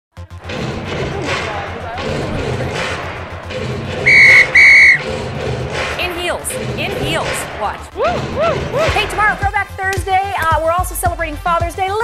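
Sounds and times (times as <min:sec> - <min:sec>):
background music with steady beat: 0:00.2 - 0:12.0
whistle blasts: 0:04.0 - 0:05.0.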